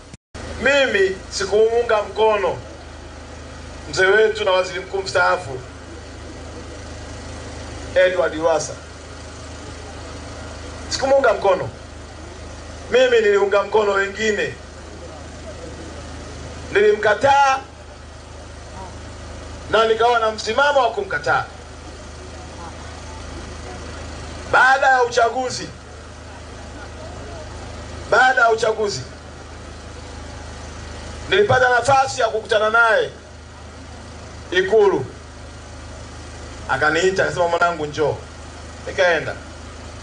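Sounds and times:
low mechanical hum: 0.0s - 40.0s
man's amplified voice: 0.5s - 2.7s, 3.9s - 5.7s, 7.9s - 8.9s, 10.9s - 11.8s, 12.9s - 14.7s, 16.7s - 17.8s, 19.7s - 21.6s, 24.5s - 25.8s, 28.0s - 29.2s, 31.2s - 33.2s, 34.5s - 35.2s, 36.7s - 39.5s.

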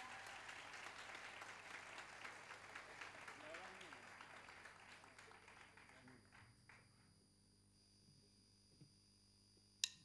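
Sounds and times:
faint audience applause: 0.0s - 7.1s.

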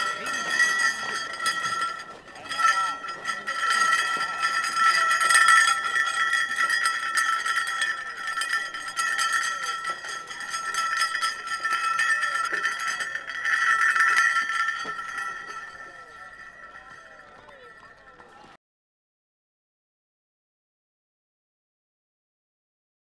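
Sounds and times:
hand bell rattling: 0.0s - 17.8s.

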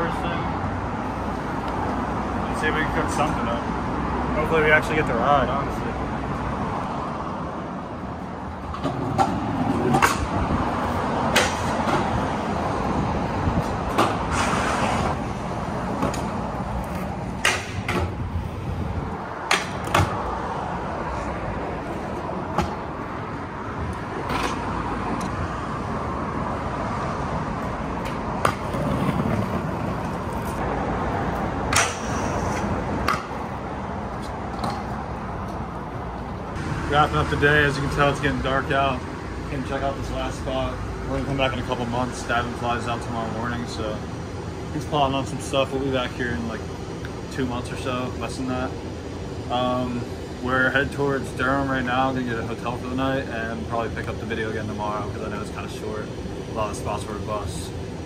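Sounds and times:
scooter wheels rolling rumble: 27.5s - 36.4s.

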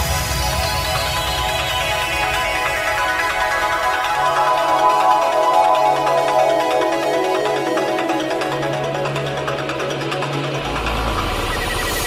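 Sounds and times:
deep bass line: 10.6s - 12.0s.

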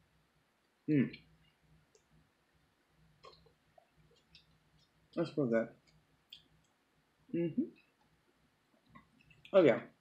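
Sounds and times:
chewing and wet mouth clicks: 5.9s - 6.8s.

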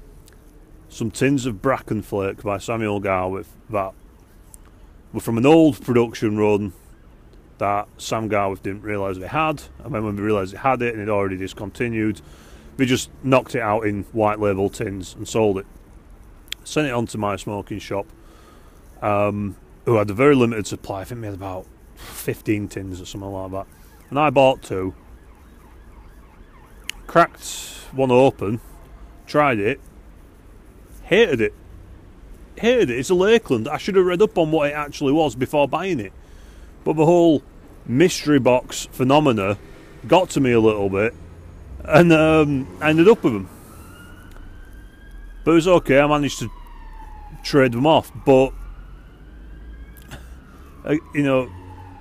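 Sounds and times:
distant siren wailing: 5.1s - 52.0s.

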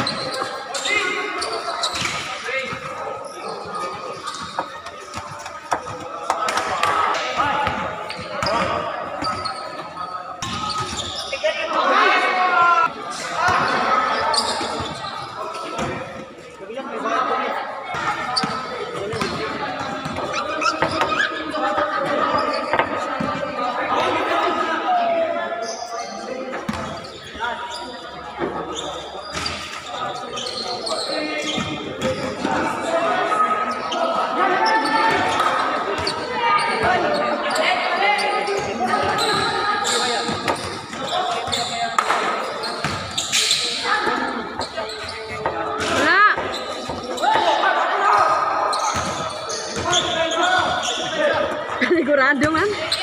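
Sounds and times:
players shouting and chatting: 0.0s - 53.0s.

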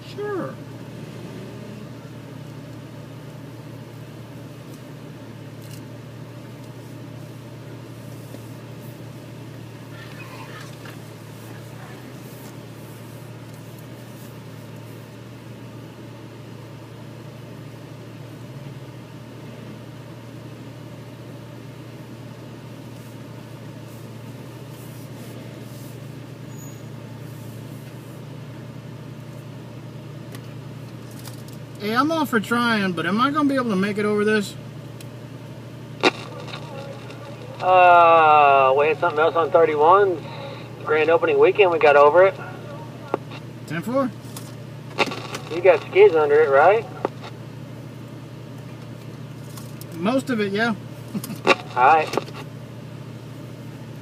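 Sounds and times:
vehicle engine at low revs: 0.0s - 54.0s.

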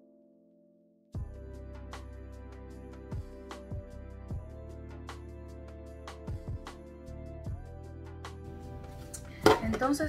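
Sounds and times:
soft guitar background music: 1.2s - 10.0s
hard object knocking down: 9.4s - 10.0s
woman speaking: 9.4s - 10.0s.

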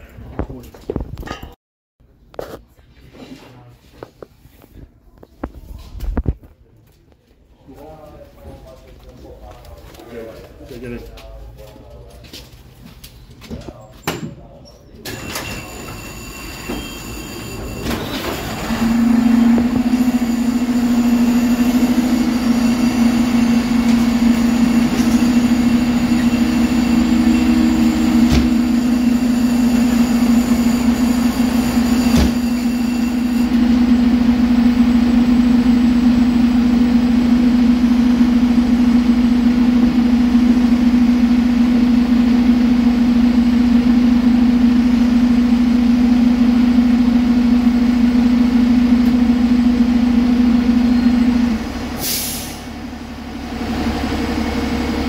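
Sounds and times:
diesel truck engine droning: 15.1s - 55.0s
air brakes hiss: 52.0s - 52.7s.

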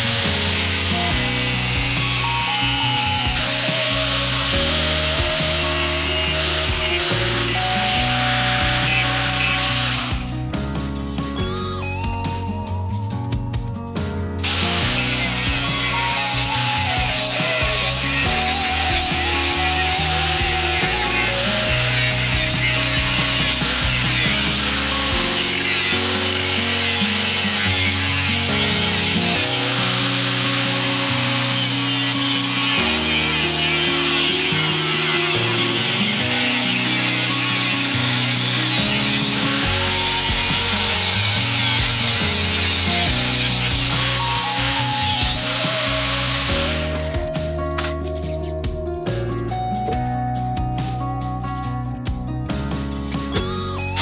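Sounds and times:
power tool grinding steel: 0.0s - 12.4s, 14.4s - 48.4s, 53.4s - 54.0s.

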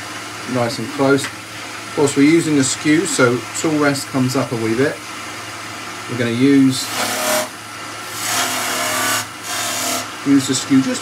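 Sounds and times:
lathe humming: 0.3s - 11.0s
chisel cutting wood on a lathe: 6.5s - 7.5s, 8.1s - 11.0s.

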